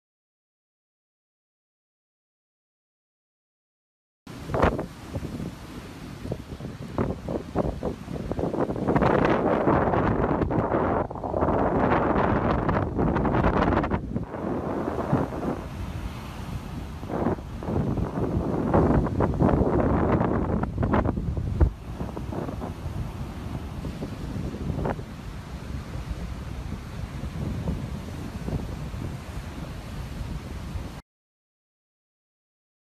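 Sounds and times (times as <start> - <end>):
breaking surf: 4.3 - 31.0
strong wind buffeting microphone: 4.3 - 31.0.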